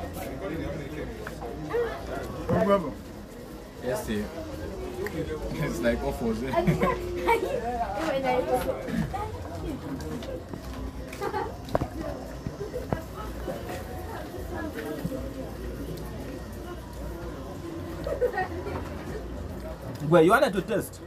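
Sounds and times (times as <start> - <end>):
people talking at a meal: 0.0 - 21.0.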